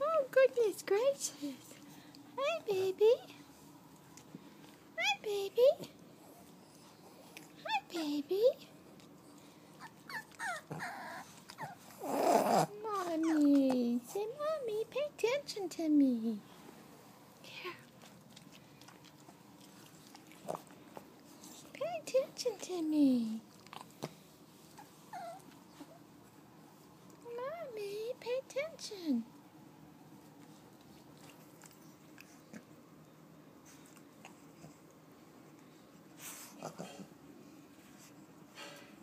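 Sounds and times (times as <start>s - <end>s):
woman saying hi in baby-talk: 2.4s - 3.3s, 5.0s - 5.9s, 7.6s - 8.6s
puppy whimpering: 9.8s - 13.7s, 24.8s - 26.1s.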